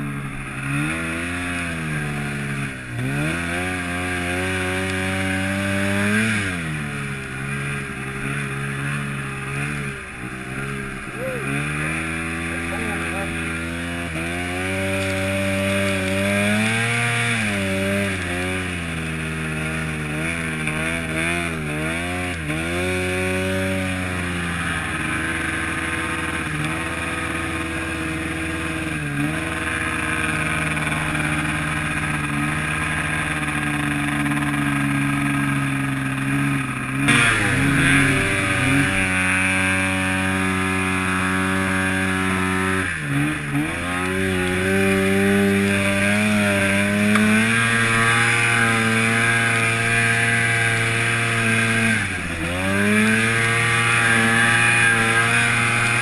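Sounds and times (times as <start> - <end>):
snowmobile engine revving: 0.0 - 56.0.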